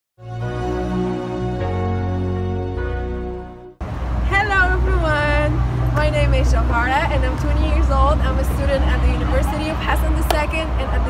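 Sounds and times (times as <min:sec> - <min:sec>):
young woman speaking: 0:04.3 - 0:11.0.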